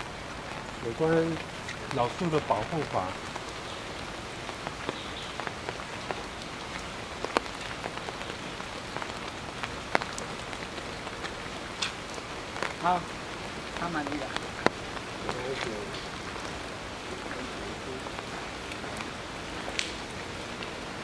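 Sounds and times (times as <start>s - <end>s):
drips on wet pavement and leaves: 0.0s - 21.0s
steady light rain: 0.0s - 21.0s.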